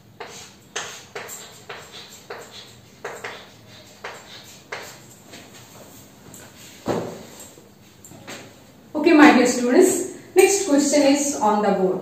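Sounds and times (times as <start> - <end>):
chalk tapping and scratching: 0.2 - 7.3.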